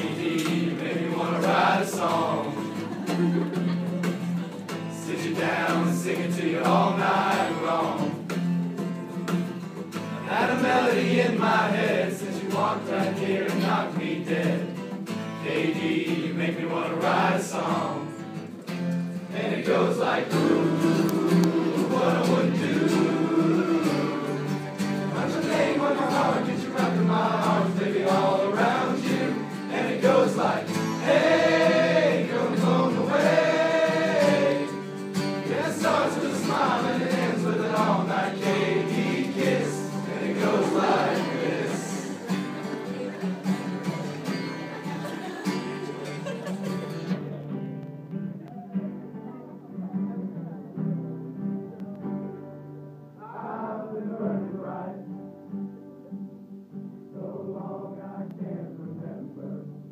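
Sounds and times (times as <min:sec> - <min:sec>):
group of men singing: 0:00.0 - 0:03.4, 0:04.8 - 0:08.5, 0:10.0 - 0:18.2, 0:19.3 - 0:42.3, 0:53.2 - 0:55.0, 0:57.2 - 0:59.7
strummed acoustic guitar: 0:00.0 - 0:57.2.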